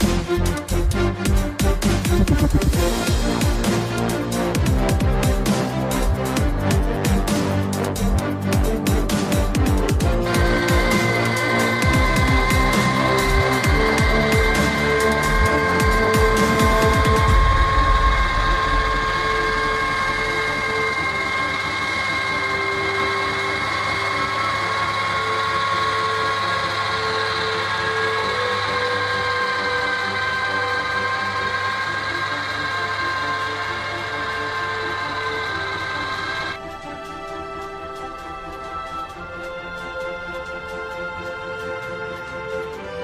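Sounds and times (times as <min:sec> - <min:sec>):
driveline high-pitched whine: 0:00.0 - 0:41.8
tractor diesel engine under load: 0:10.1 - 0:36.6.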